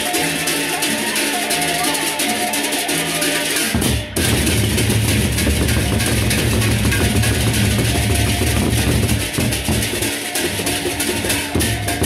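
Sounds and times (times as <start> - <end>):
hand cymbals clashing: 0.0 - 12.0
large drums beating: 2.5 - 12.0.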